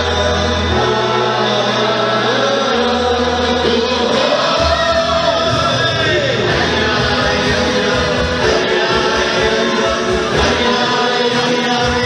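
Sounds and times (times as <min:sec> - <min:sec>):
keyboard bass notes: 0:00.0 - 0:12.0
voices singing together: 0:00.0 - 0:12.0.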